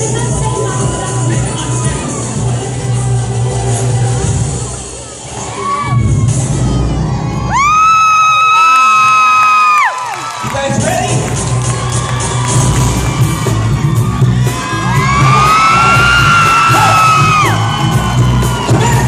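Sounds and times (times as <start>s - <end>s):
concert music with bass beat: 0.0s - 8.5s, 10.4s - 19.0s
crowd cheering: 5.0s - 19.0s.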